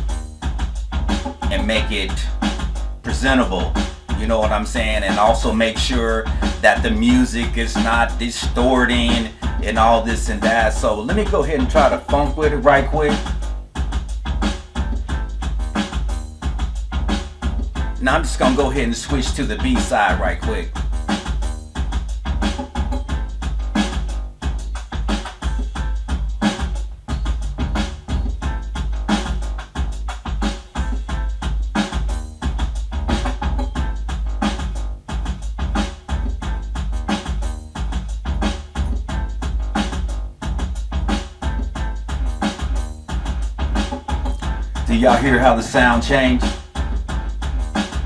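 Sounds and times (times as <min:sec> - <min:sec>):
synth bass line: 0:00.0 - 0:24.6, 0:32.0 - 0:48.0
drum machine beat: 0:00.0 - 0:48.0.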